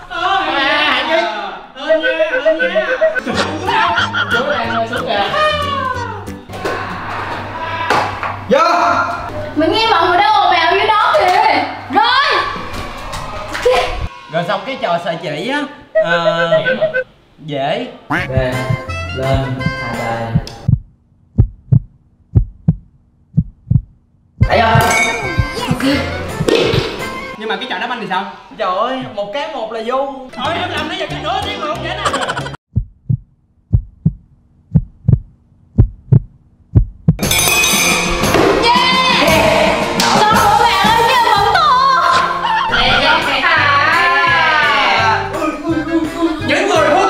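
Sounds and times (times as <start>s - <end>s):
heartbeat thumps: 18.1s - 27.0s, 32.7s - 37.2s.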